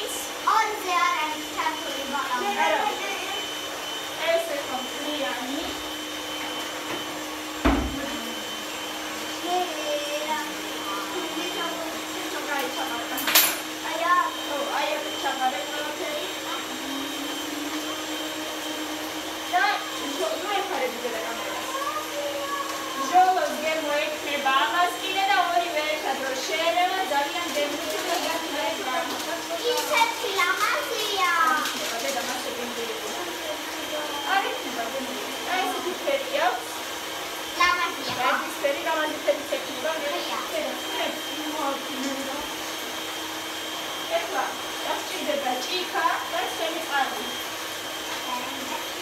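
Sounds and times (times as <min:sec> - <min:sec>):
people talking: 0:00.0 - 0:06.7, 0:07.7 - 0:08.7, 0:09.3 - 0:18.7, 0:19.4 - 0:36.9, 0:37.6 - 0:42.6, 0:44.0 - 0:47.4, 0:48.1 - 0:49.0
electric mixer motor whirring: 0:00.0 - 0:49.0.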